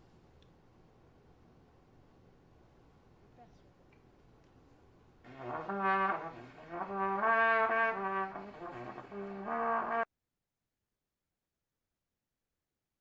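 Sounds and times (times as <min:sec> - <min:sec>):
trombone playing low notes: 0:05.3 - 0:10.1.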